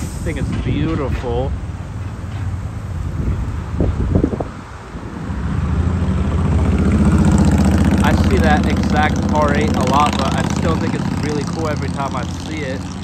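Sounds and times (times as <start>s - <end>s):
sports car engine rumble: 0.0s - 13.0s.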